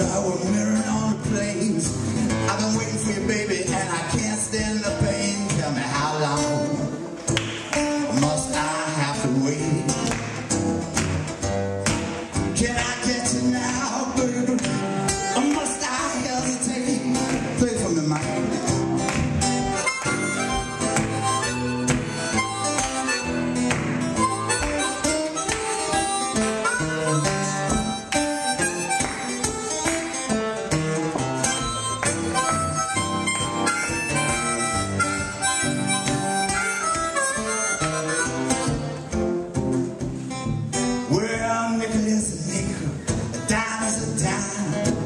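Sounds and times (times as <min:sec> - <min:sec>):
acoustic guitar accompaniment: 0:00.0 - 0:45.0
blues harmonica solo: 0:14.0 - 0:16.3, 0:18.2 - 0:41.1.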